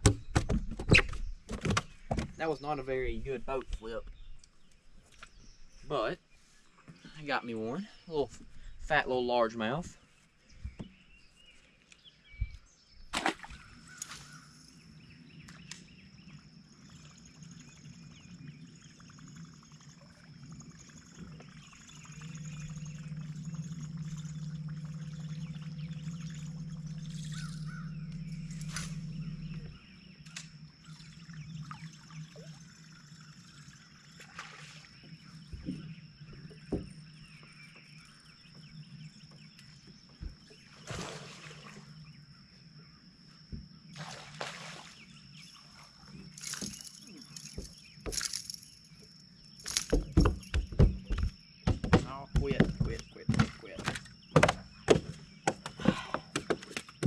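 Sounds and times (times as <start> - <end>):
knocks on boat deck: 0.0 - 2.4, 35.5 - 37.0, 49.8 - 57.0
water lapping against hull: 13.2 - 57.0
electric trolling motor humming: 13.8 - 40.7.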